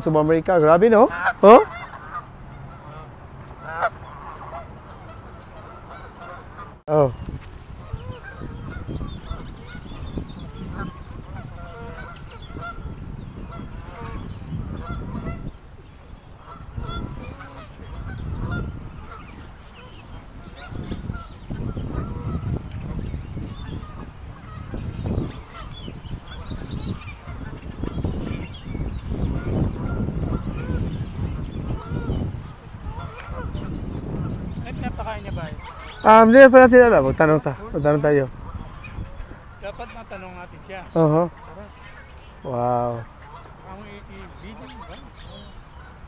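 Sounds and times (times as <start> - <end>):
geese honking: 0.0 - 46.0
wind rumble on microphone: 0.0 - 46.0.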